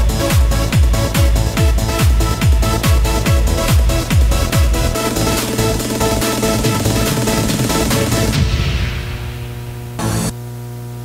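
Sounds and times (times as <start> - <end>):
electronic music: 0.0 - 10.4
electrical hum with hiss: 7.6 - 11.0.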